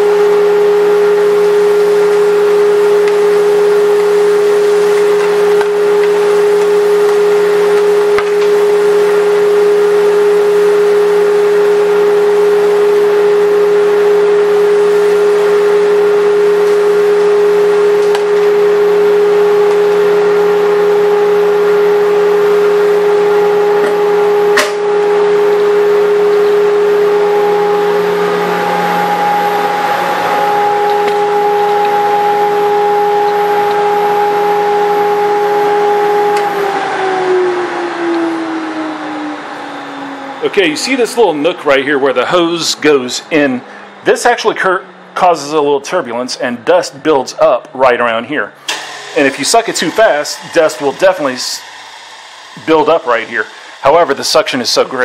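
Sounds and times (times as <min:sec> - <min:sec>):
dust collector whine and hum: 0:00.0 - 0:55.0.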